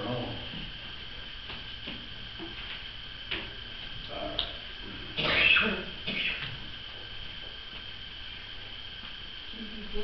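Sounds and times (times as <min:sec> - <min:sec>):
faint high hum: 0:00.0 - 0:10.0.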